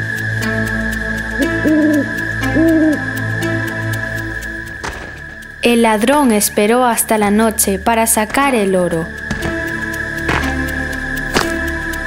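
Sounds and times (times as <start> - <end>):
soft electronic music: 0.0 - 12.0
cartoon owl hoots: 1.4 - 3.2.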